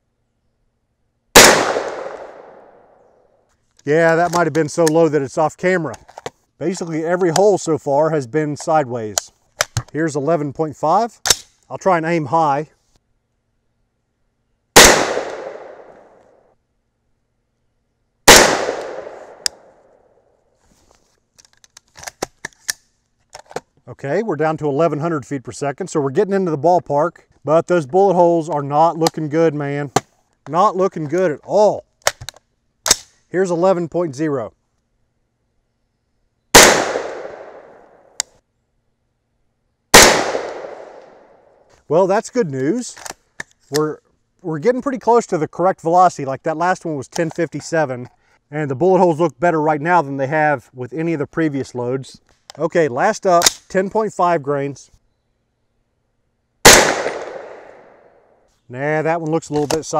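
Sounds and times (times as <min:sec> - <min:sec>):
rifle shots echoing: 0:01.4 - 0:02.9, 0:14.8 - 0:16.2, 0:18.3 - 0:19.8, 0:36.5 - 0:38.0, 0:39.9 - 0:41.3, 0:56.6 - 0:58.1.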